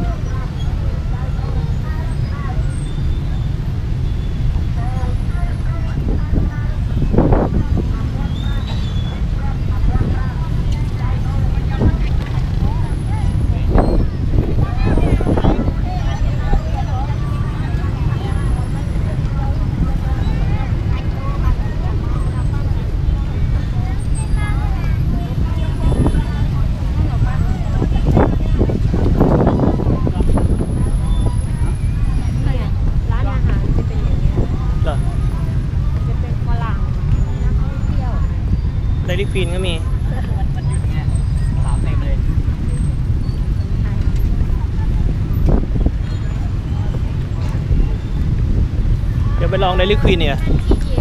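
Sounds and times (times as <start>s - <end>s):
motorbike and car traffic: 0.0s - 51.0s
voices of passers-by: 0.0s - 51.0s.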